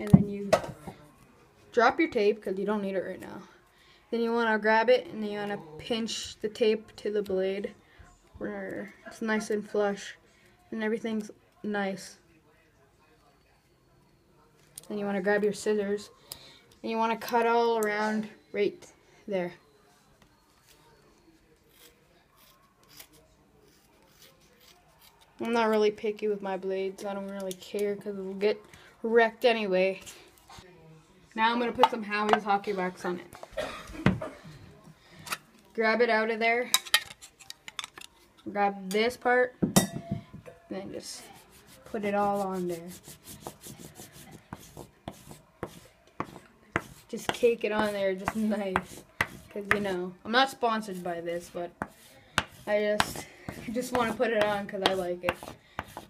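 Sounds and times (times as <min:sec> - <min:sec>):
wax rubbing on cloth tape: 0:41.2 - 0:47.1.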